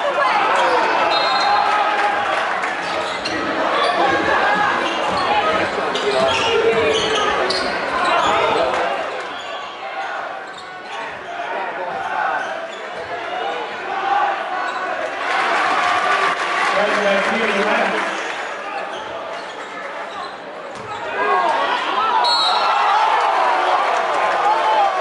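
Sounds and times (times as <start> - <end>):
crowd chatter: 0.0 - 25.0.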